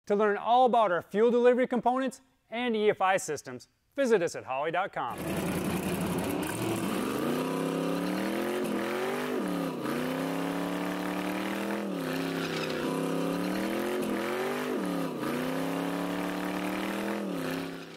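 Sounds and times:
car engine revving hard: 5.1 - 17.9.

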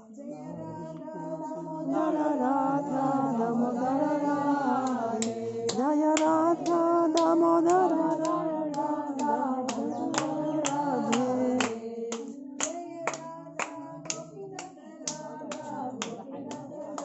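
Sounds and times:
voices singing a chant: 0.0 - 17.0
hand-clapping beat: 4.7 - 17.0.

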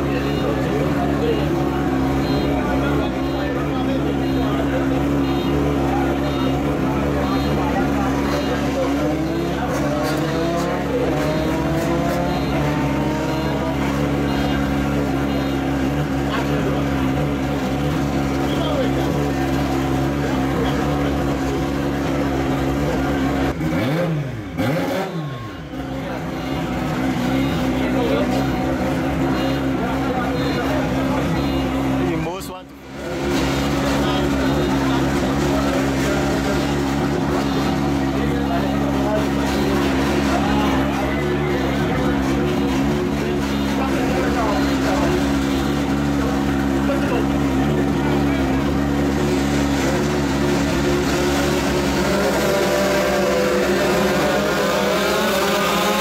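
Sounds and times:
engine throttle blips: 0.0 - 56.0
motorcycle engines idling: 0.0 - 56.0.

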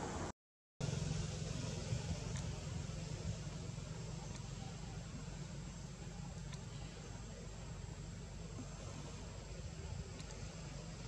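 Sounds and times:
even hiss: 0.0 - 11.0
low rumble: 0.0 - 11.0
faint click: 6.4 - 6.7, 10.1 - 10.4.

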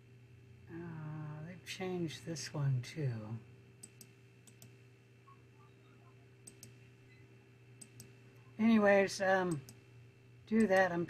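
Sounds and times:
faint electrical hum: 0.0 - 11.0
computer mouse clicks: 3.8 - 5.4, 6.4 - 6.8, 7.8 - 8.2, 9.5 - 9.8, 10.6 - 10.9.

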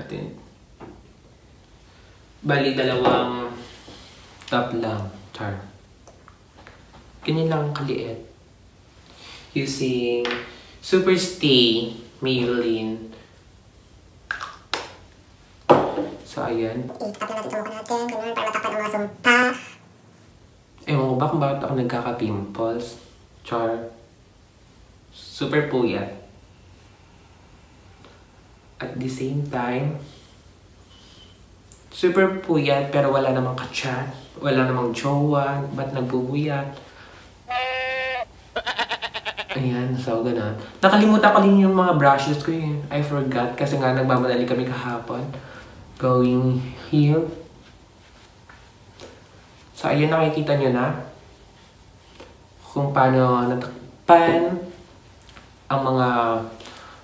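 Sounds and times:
goat-like bleating cry: 37.5 - 39.8
man speaking: 37.5 - 40.2.

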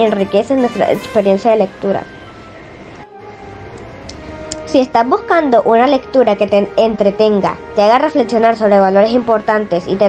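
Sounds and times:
sustained background chords: 0.0 - 10.0.

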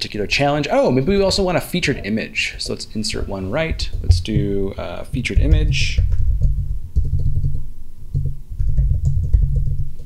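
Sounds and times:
typing on computer keyboard: 6.0 - 10.0.

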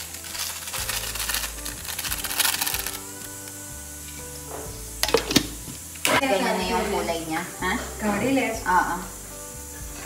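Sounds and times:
plastic packet crinkling: 0.0 - 3.6
background music: 0.0 - 10.0.

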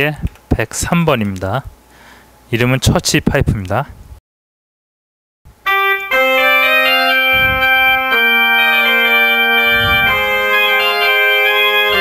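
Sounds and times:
synthesizer pipe organ chords: 5.5 - 12.0.

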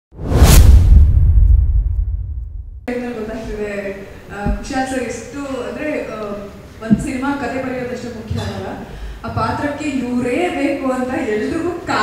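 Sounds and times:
whoosh: 0.2 - 2.9
deep low rumble: 0.6 - 2.9.

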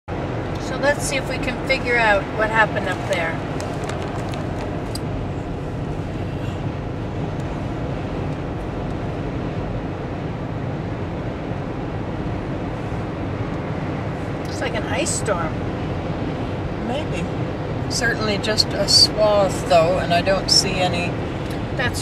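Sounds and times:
car road noise inside cabin: 0.1 - 22.0.

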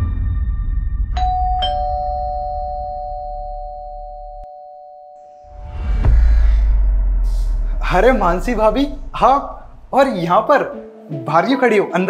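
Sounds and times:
doorbell ding-dong chime: 1.2 - 5.4
low background music: 7.2 - 12.0.

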